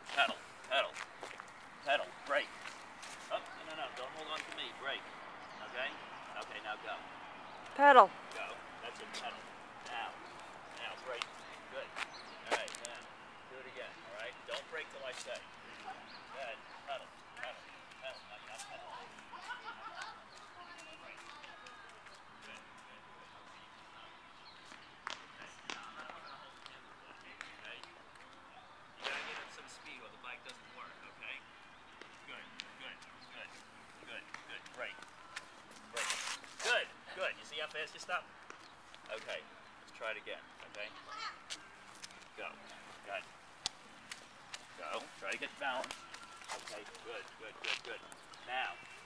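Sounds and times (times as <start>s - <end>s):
faint voices talking: 0.0s - 49.0s
outdoor background noise: 0.0s - 49.0s.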